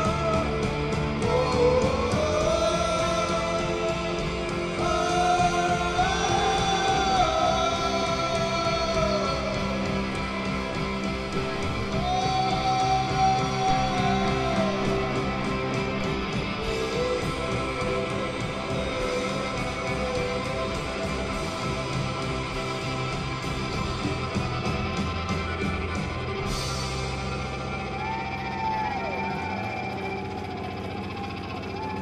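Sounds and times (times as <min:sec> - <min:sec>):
rock band playing instrumental: 0:00.0 - 0:31.9.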